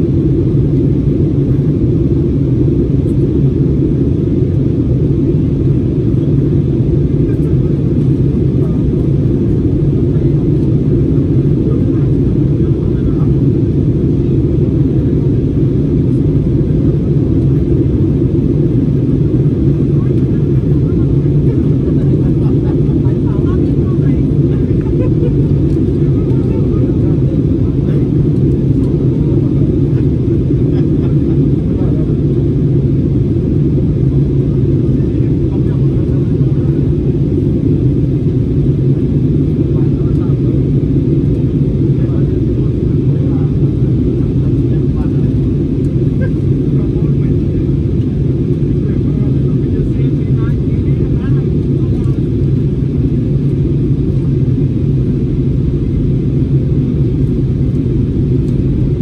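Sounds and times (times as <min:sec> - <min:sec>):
airliner cabin engine drone: 0:00.0 - 0:59.0.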